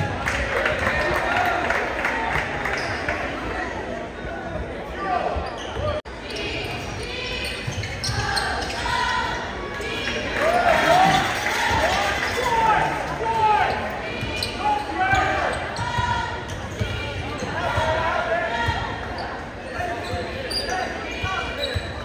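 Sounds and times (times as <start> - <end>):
voices of spectators and players: 0.0 - 22.0.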